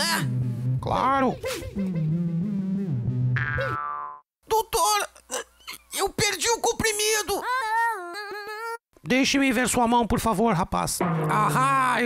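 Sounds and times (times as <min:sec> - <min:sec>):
cartoon springy boing: 0:03.4 - 0:04.2, 0:11.0 - 0:12.0
wordless voice-like pitched sounds: 0:11.0 - 0:12.0.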